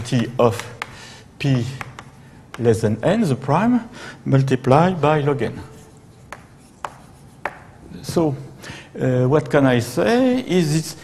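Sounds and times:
chalk tapping on chalkboard: 0:00.5 - 0:01.0, 0:01.6 - 0:02.8, 0:05.7 - 0:07.8.

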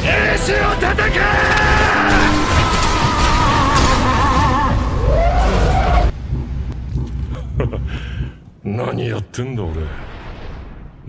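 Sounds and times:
dramatic music: 0:00.0 - 0:08.4.

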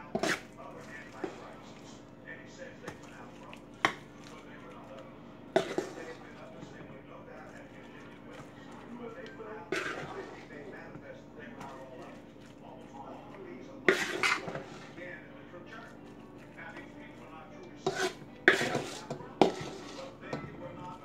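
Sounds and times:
metal spoon scraping food in bowl: 0:00.1 - 0:01.9, 0:05.5 - 0:06.4, 0:09.6 - 0:10.7, 0:13.8 - 0:15.0, 0:17.6 - 0:20.5.

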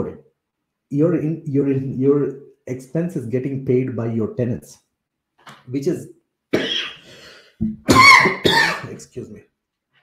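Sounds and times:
man coughing: 0:06.5 - 0:07.0, 0:07.9 - 0:09.0.

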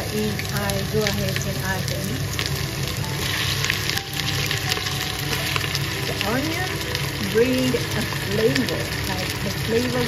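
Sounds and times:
meat and onions sizzling in oil: 0:00.0 - 0:10.0.

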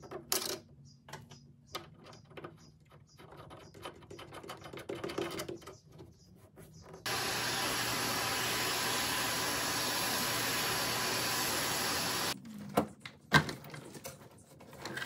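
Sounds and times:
shop vacuum running: 0:07.1 - 0:12.4
vacuum hose sucking metal shavings: 0:07.1 - 0:12.4.

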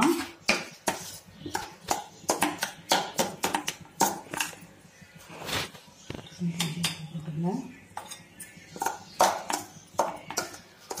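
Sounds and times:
spoon scraping metal bowl: 0:00.0 - 0:02.7, 0:07.8 - 0:11.0.

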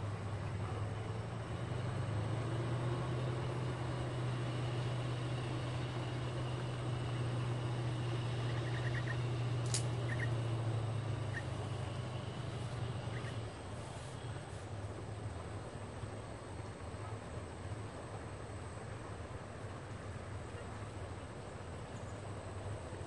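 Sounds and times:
boat diesel engine drone: 0:00.0 - 0:23.0
faint chirps: 0:08.2 - 0:14.7
sharp click: 0:09.6 - 0:10.0.

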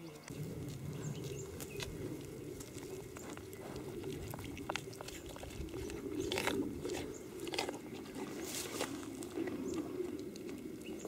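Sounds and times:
doves cooing: 0:00.0 - 0:11.0
small birds chirping: 0:00.0 - 0:11.0.

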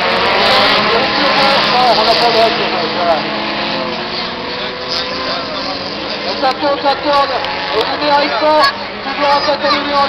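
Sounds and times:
race car engines running hard: 0:00.0 - 0:10.0
voices: 0:00.0 - 0:10.0.

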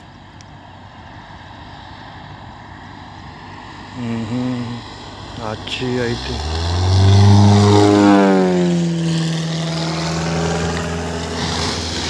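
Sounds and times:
propeller aircraft engine drone: 0:00.0 - 0:12.0.

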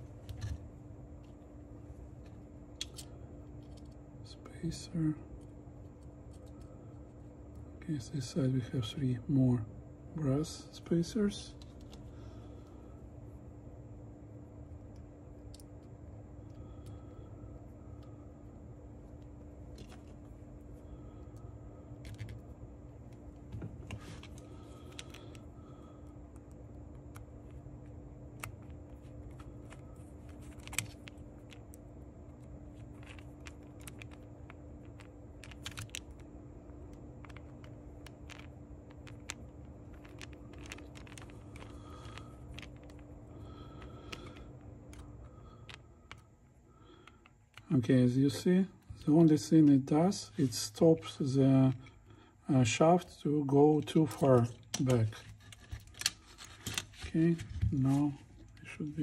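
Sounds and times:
steady low hum: 0:00.0 - 0:59.0.

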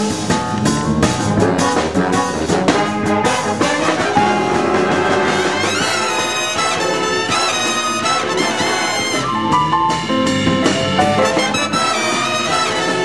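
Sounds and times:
drum kit hits: 0:00.0 - 0:13.0
jazz big band playing: 0:00.0 - 0:13.0.

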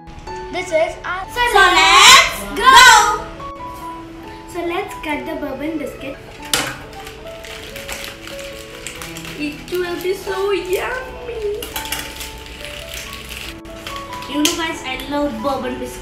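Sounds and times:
music with sustained notes: 0:00.0 - 0:16.0
crackles and clicks: 0:06.3 - 0:15.1
voice: 0:09.4 - 0:11.6, 0:14.3 - 0:16.0.

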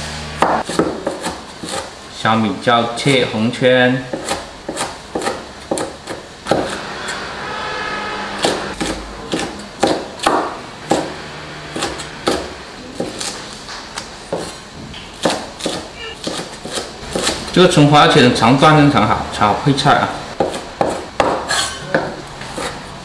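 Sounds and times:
cleaver chopping on wooden board: 0:00.4 - 0:01.9, 0:04.1 - 0:06.8, 0:08.4 - 0:11.2, 0:11.8 - 0:13.4, 0:15.2 - 0:17.5, 0:20.4 - 0:22.7.

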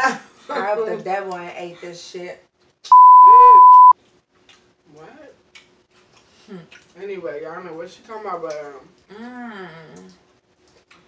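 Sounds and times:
censor bleep: 0:02.9 - 0:04.0.

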